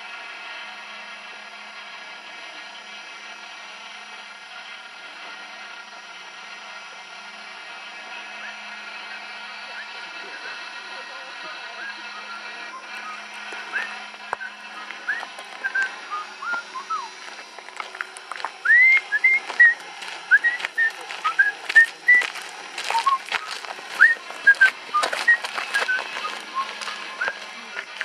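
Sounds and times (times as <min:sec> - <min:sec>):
person whistling a tune: 0:13.0 - 0:17.2, 0:18.6 - 0:27.4
footsteps on gravel: 0:13.0 - 0:28.0.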